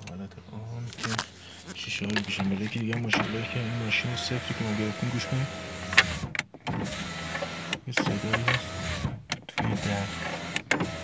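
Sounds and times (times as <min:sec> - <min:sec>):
electric window motor whining: 0:02.4 - 0:11.0.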